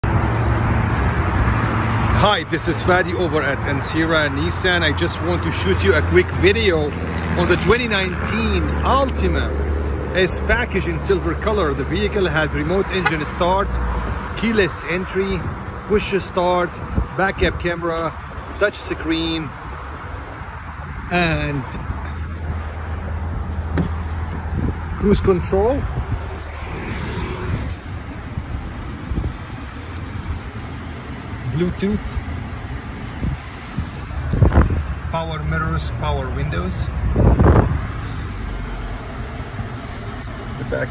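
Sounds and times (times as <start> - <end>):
road traffic roar: 0.0 - 40.9
wind buffeting microphone: 16.8 - 40.9.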